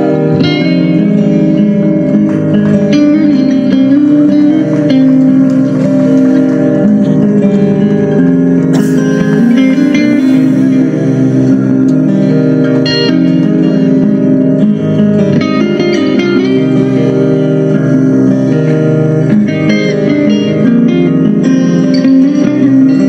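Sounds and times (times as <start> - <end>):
heavy metal band playing live: 0.0 - 15.4
electric guitar ringing chords: 0.0 - 23.0.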